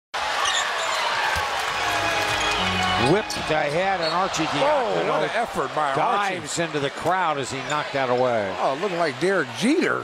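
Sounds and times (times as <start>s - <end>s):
murmur of arena crowd: 0.2s - 10.0s.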